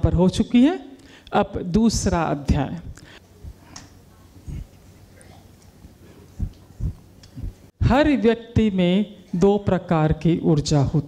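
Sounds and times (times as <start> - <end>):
woman speaking: 0.0 - 4.7
soft low thumps: 2.5 - 3.7, 4.5 - 4.7, 6.4 - 7.7.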